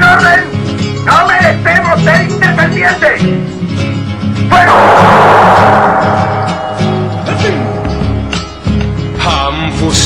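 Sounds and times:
gun volley with echo: 4.7s - 8.5s.

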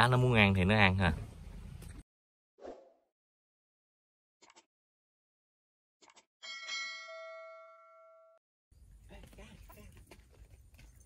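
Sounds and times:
notification bell chime: 6.5s - 8.4s.

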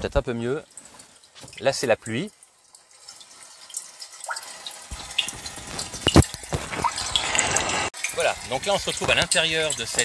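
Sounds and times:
rain hiss through car speakers: 0.1s - 10.0s.

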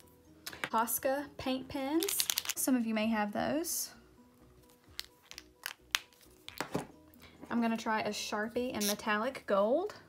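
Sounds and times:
pens clicking on tabletop: 2.0s - 2.6s.

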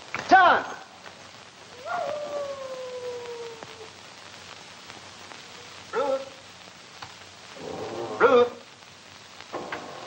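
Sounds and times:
soundtrack hiss: 0.0s - 10.0s
dog howling: 1.7s - 4.0s.

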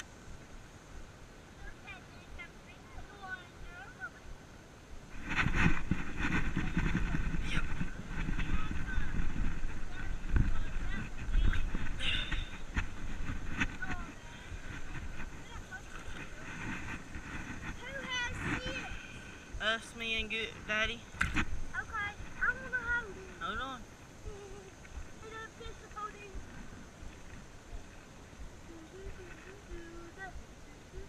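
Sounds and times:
wind rumble on microphone: 0.0s - 31.0s
bursts of voices: 17.7s - 21.1s.

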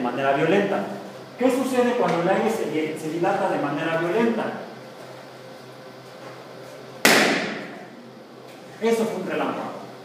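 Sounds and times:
balloon bursting: 7.0s - 7.8s.

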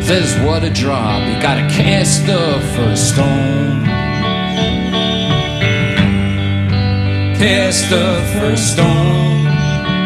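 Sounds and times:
bass guitar: 0.0s - 10.0s
electric guitars ringing chords: 0.0s - 10.0s.

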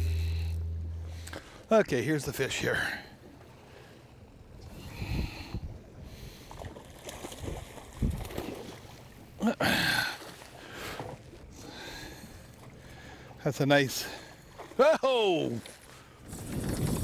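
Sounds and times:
water slapping boat hull: 5.5s - 17.0s
fish thrashing and splashing: 6.6s - 8.9s.

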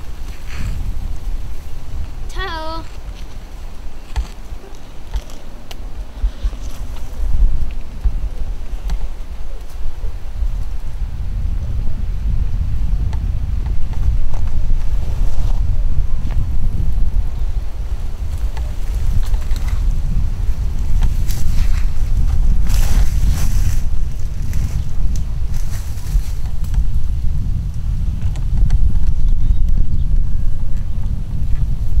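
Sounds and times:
wind buffeting microphone: 0.0s - 32.0s.

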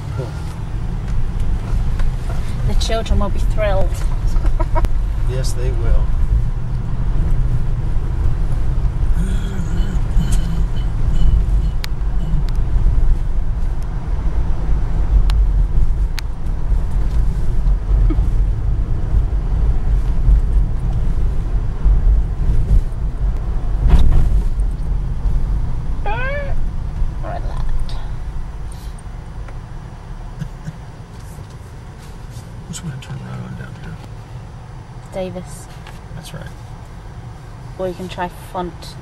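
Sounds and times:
car road noise: 0.0s - 39.0s.

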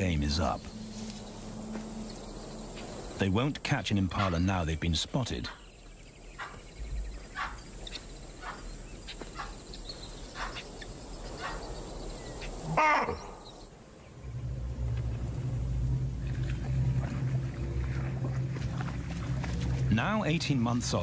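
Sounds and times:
low steady drone: 0.0s - 4.0s, 13.8s - 21.0s
animal alarm calls: 6.4s - 9.6s, 10.3s - 11.7s, 12.4s - 13.6s.

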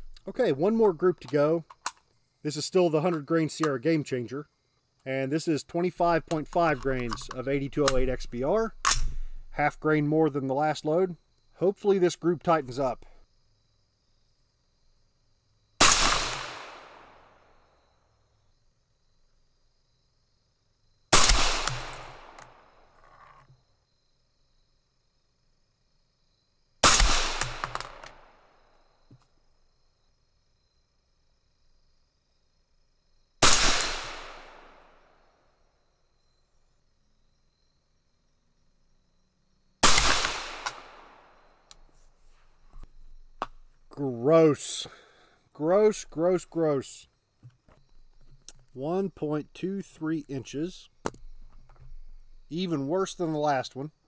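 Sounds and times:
suppressed rifle shots: 15.8s - 17.2s, 21.1s - 22.6s, 26.8s - 28.3s, 33.4s - 34.9s, 39.8s - 41.3s
ringing echo of gunshot: 15.8s - 17.3s, 21.2s - 22.4s, 26.8s - 28.3s, 33.4s - 34.8s, 39.8s - 41.3s.

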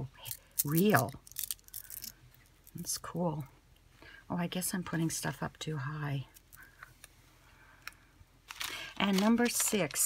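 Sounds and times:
plastic bag rustling: 8.4s - 10.0s.

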